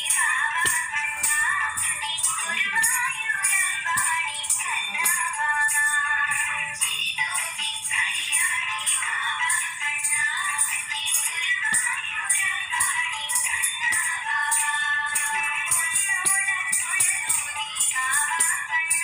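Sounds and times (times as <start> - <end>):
person singing devotional song: 0.0 - 19.0.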